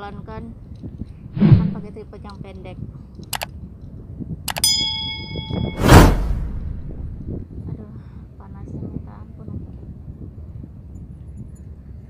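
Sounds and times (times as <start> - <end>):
loud whoosh: 1.4 - 1.9, 5.5 - 7.4
bell-like ding: 4.6 - 6.1.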